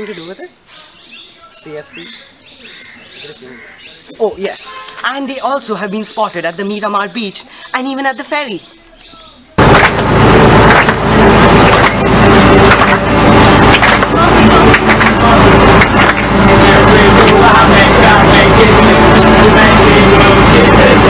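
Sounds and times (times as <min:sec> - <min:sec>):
acoustic guitars strumming: 0:09.6 - 0:21.0
loud low rumble: 0:09.6 - 0:21.0
people singing: 0:13.3 - 0:21.0.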